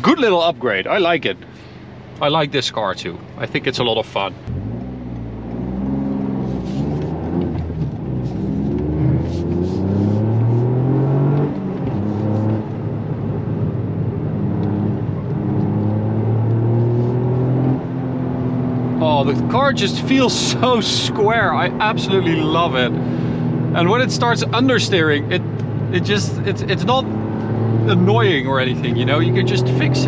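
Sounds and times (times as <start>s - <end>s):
gear shifts: 3.1s - 13.0s, 14.2s - 30.0s
car engine accelerating: 4.4s - 30.0s.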